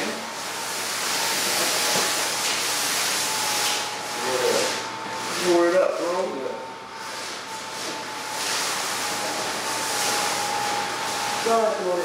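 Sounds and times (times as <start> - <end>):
blower fans hissing air: 0.0 - 12.0.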